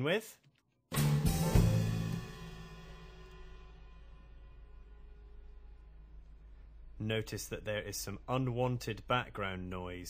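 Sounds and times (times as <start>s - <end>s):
cymbal ringing: 1.6s - 5.8s.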